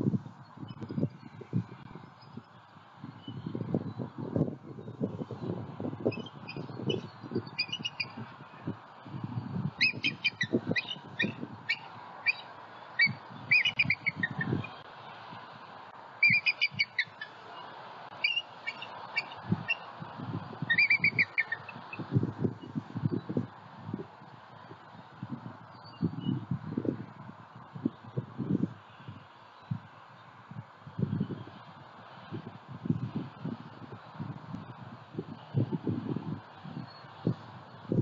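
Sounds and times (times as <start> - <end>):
eagle chittering calls: 6.1 - 8.2, 9.8 - 14.8, 16.2 - 19.9, 20.6 - 22.1.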